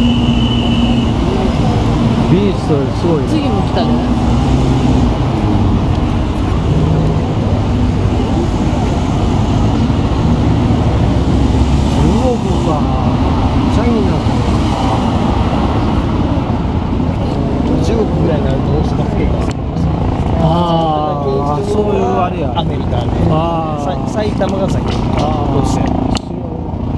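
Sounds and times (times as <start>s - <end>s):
vehicles driving past: 0.0s - 26.9s
people talking: 1.0s - 4.2s, 5.9s - 10.0s, 11.9s - 26.9s.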